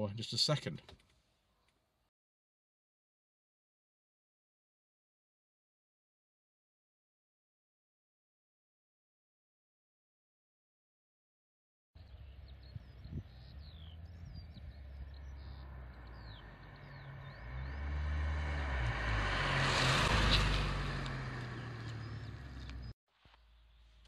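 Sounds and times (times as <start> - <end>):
faint birds chirping: 12.0 - 24.0
car driving past: 13.4 - 22.9.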